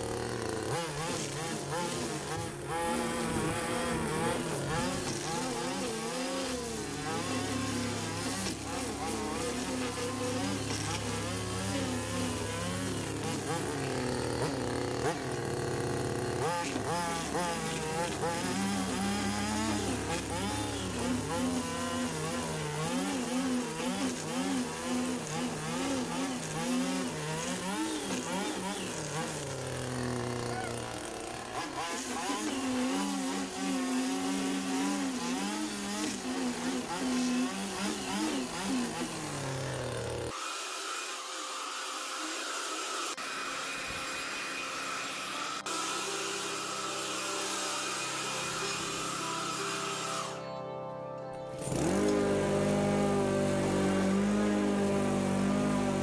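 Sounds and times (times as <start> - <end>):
string trimmer engine revving: 0.0 - 50.5, 51.5 - 56.0
trimmer line cutting grass: 0.0 - 50.7, 51.4 - 56.0.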